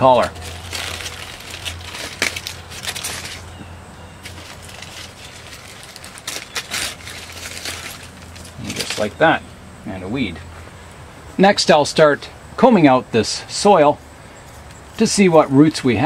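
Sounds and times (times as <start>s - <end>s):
aluminium foil crinkling: 0.0s - 9.2s
low steady hum: 0.0s - 16.0s.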